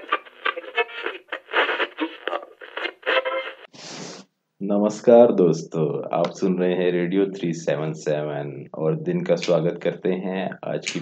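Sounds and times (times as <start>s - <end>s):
radio tuning across stations: 0.0s - 4.2s.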